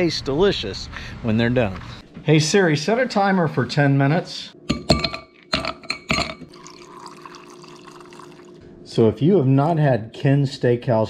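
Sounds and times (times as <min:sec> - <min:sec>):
liquid pouring into tumbler: 0:06.4 - 0:08.6.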